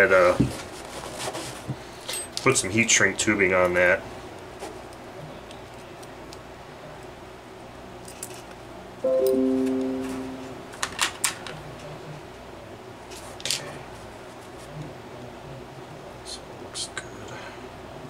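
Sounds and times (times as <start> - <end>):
plucked string chord: 9.1 - 10.8.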